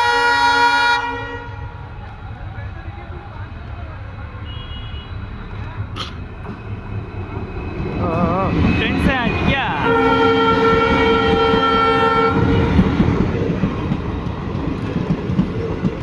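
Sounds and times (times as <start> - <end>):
locomotive air horn blast: 0.0 - 1.8, 9.2 - 12.7
locomotive rumble: 5.2 - 16.0.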